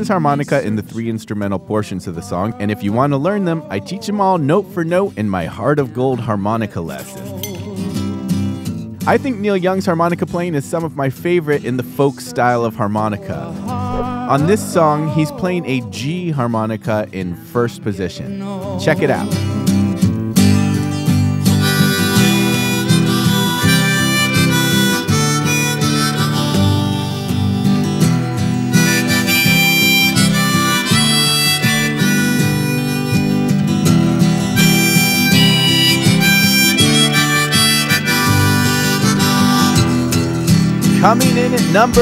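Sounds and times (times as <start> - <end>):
acoustic guitar: 0.0 - 42.0
harmonica folk melody: 18.3 - 42.0.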